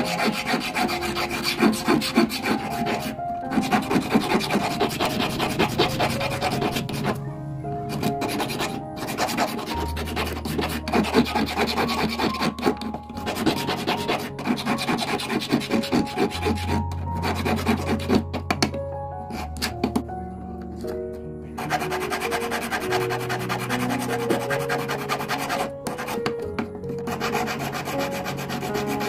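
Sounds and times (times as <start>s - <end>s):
file rasping on copper: 0.0s - 7.2s, 7.9s - 18.5s, 21.6s - 26.4s, 27.0s - 29.0s
background music: 0.0s - 29.0s.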